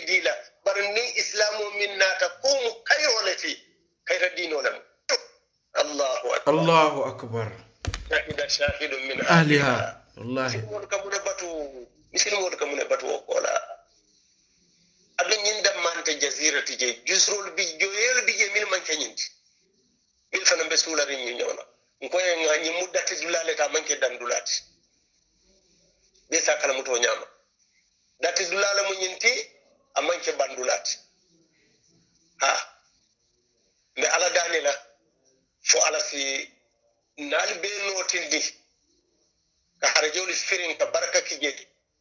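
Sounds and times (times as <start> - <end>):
man saying ha: 6.5 - 7.6, 9.2 - 10.7.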